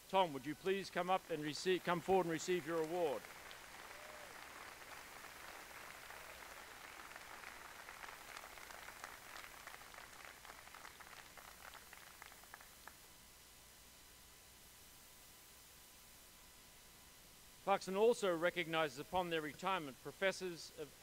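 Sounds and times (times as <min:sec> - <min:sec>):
faint audience applause: 0:00.6 - 0:13.0.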